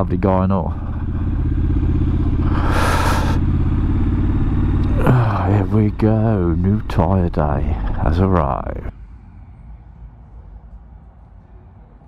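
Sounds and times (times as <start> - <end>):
motorcycle engine running at low revs: 0.0 - 8.9.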